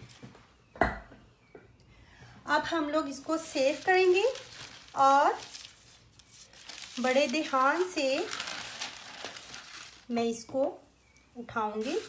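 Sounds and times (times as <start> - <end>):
paper rustling and crinkling: 3.3 - 10.1, 11.8 - 12.0.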